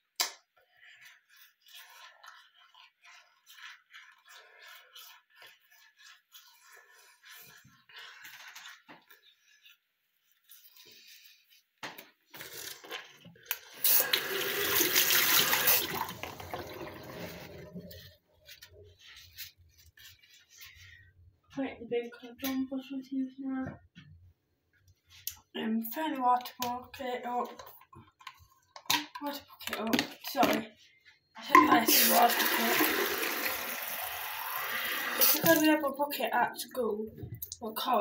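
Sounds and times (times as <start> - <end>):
teeth brushing: 0.2 - 11.6, 31.6 - 35.9.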